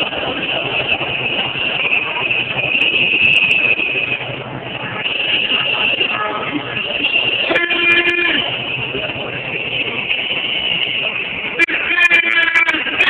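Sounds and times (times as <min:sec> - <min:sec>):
crowd of marching protesters: 0:00.0 - 0:13.0
horn blasts: 0:00.3 - 0:13.0.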